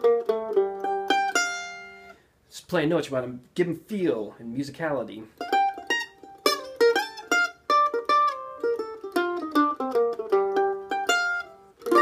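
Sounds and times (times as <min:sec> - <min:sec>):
mandolin playing a picked lick: 0:00.0 - 0:02.2, 0:05.3 - 0:12.0.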